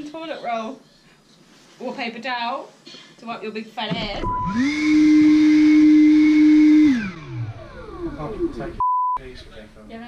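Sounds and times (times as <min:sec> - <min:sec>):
leaf blower motor whine: 0:04.4 - 0:08.8.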